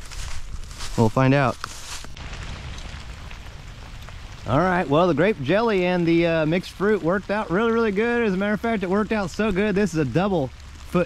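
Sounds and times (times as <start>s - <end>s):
rain on leaf litter: 0.0s - 11.0s.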